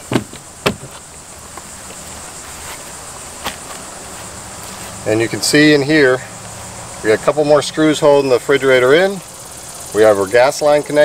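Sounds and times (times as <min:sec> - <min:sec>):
high-pitched insect chorus: 0:00.0 - 0:11.0.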